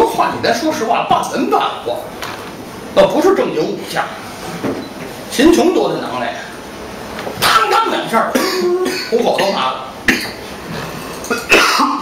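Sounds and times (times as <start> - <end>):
man coughing: 8.3 - 10.5, 11.2 - 12.0.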